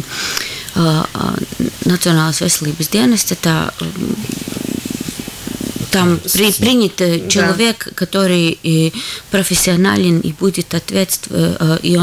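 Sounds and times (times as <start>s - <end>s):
person humming in vocal fry: 3.8s - 7.8s.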